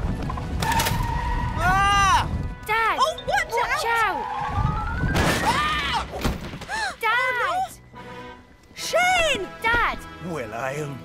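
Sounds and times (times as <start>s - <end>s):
cartoon crash thud and clatter: 5.1s - 6.7s.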